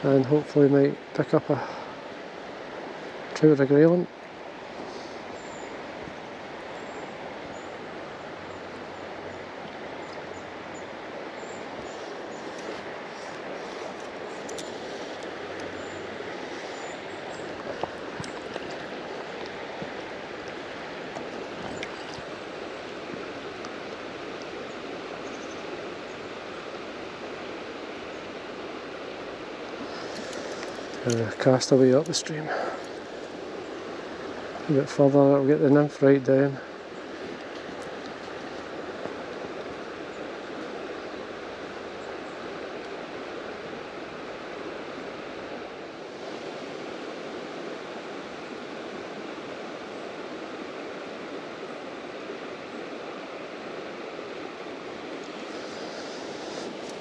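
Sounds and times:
river water rushing: 0:00.0 - 0:57.0
faint light clicks: 0:12.5 - 0:15.8.

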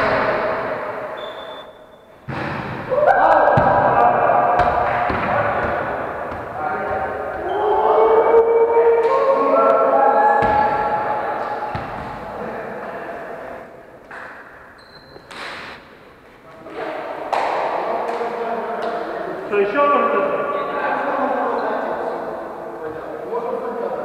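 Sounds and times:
volleyball thudding: 0:02.2 - 0:07.5, 0:10.4 - 0:12.4
players shouting and chatting: 0:02.6 - 0:14.5, 0:16.5 - 0:24.0.

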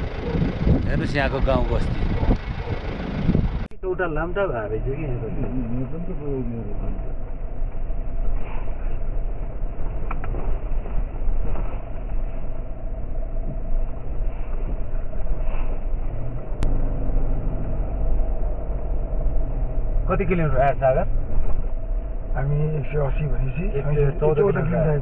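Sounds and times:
vehicle engine and road rumble: 0:00.0 - 0:25.0.

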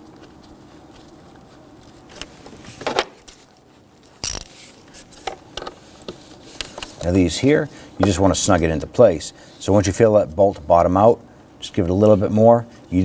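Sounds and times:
small clicks and scrapes of tools: 0:04.0 - 0:07.0.

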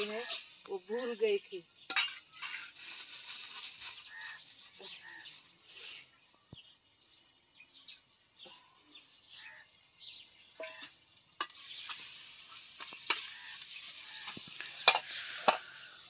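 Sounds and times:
metal spoon scraping a pot: 0:01.8 - 0:03.1, 0:10.6 - 0:16.0.

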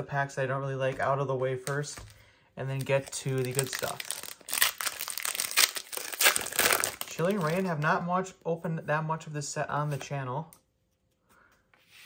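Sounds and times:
foil wrapper crinkling: 0:02.8 - 0:07.7.

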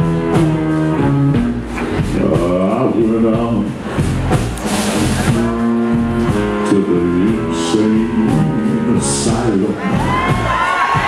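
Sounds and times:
live blues band: 0:00.0 - 0:11.0
horns holding long notes: 0:05.1 - 0:11.0.

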